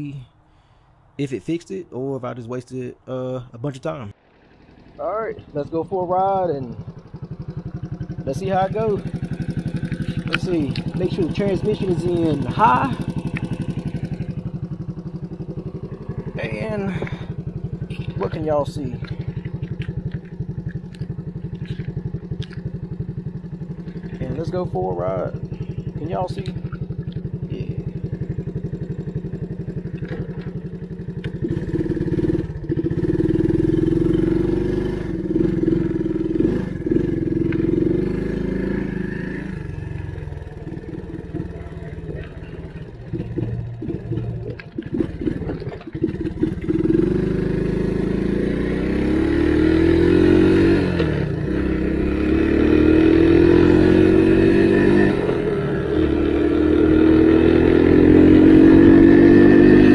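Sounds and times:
three-wheeler engine idling and revving: 0:04.1 - 0:59.9.

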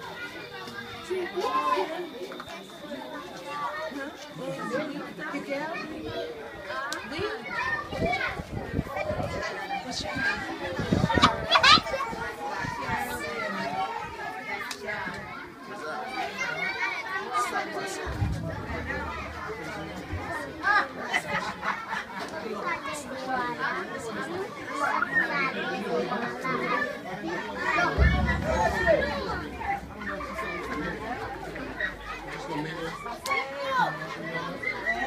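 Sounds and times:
children talking: 0:00.0 - 0:35.0.

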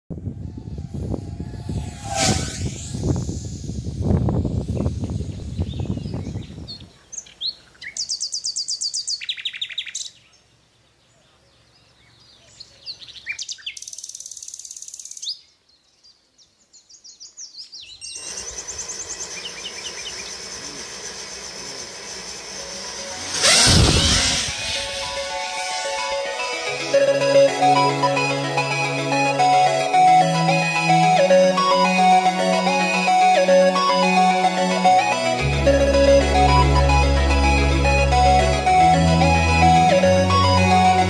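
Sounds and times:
loud rising whoosh: 0:00.1 - 0:06.0, 0:22.4 - 0:41.0
wind buffeting microphone: 0:00.1 - 0:07.0, 0:23.4 - 0:25.3
songbirds chirping and trilling: 0:04.6 - 0:23.0.

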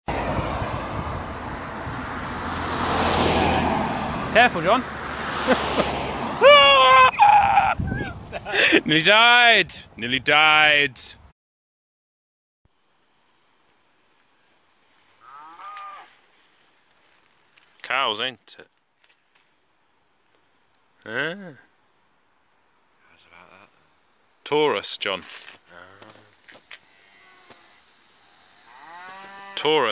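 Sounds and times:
car passing close by: 0:00.1 - 0:06.5
cow mooing: 0:15.2 - 0:16.1, 0:26.8 - 0:29.9.

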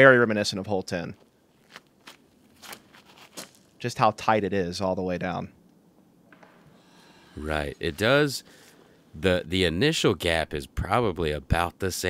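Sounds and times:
footsteps on tee pad: 0:01.6 - 0:03.6.

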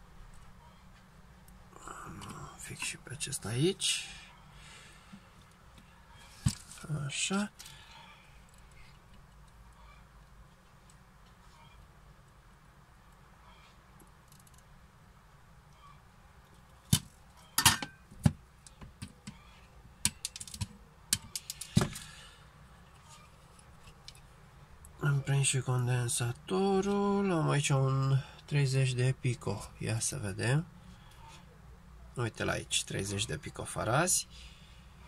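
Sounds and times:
low steady hum: 0:00.0 - 0:35.0.

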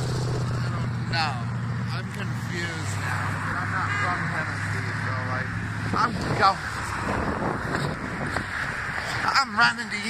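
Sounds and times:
road traffic passing: 0:00.0 - 0:10.0
wind on microphone: 0:05.9 - 0:09.2.

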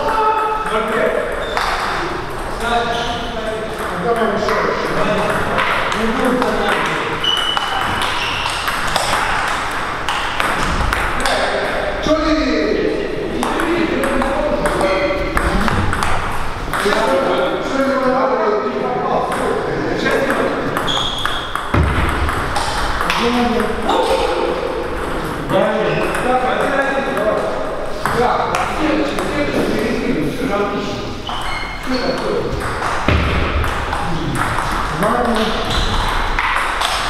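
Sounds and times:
table tennis balls clicking: 0:00.0 - 0:02.7, 0:03.6 - 0:11.8, 0:13.4 - 0:17.3, 0:19.2 - 0:23.9, 0:31.2 - 0:37.0
people talking: 0:00.0 - 0:07.3, 0:11.0 - 0:16.1, 0:16.7 - 0:21.0, 0:23.0 - 0:31.2, 0:31.8 - 0:36.0.

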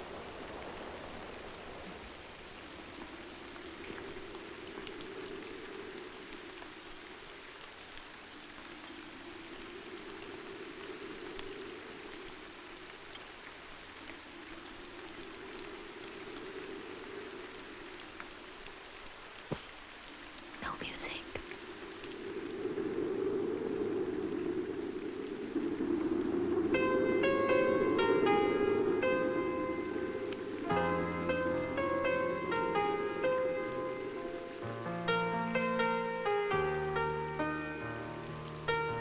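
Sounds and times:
steady rain: 0:00.0 - 0:39.0.

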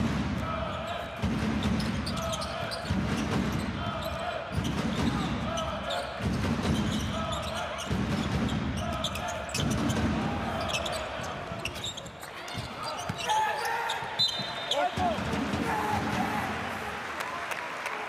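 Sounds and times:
sneakers squeaking on floor: 0:00.6 - 0:15.1.

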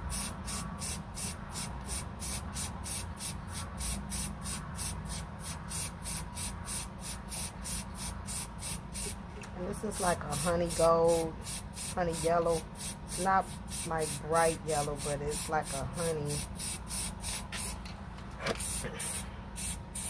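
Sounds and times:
spray paint can hissing: 0:00.1 - 0:09.2, 0:09.9 - 0:17.8, 0:18.6 - 0:20.0.

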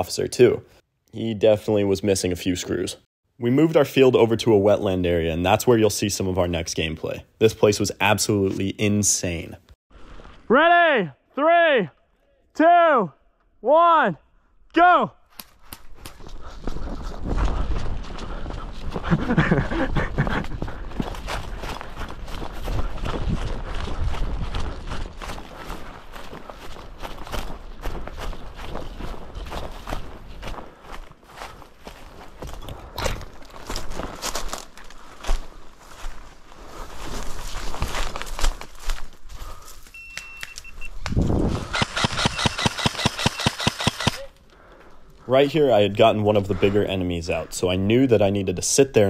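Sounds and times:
footsteps crunching through dry leaves: 0:21.0 - 0:40.0
airsoft rifle fire burst: 0:41.7 - 0:44.3.

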